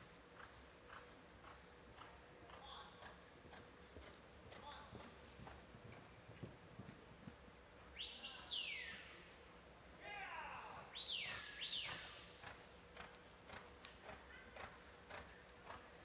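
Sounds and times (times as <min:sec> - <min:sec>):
horse hoofbeats on dirt: 0:00.2 - 0:07.6, 0:11.3 - 0:16.0.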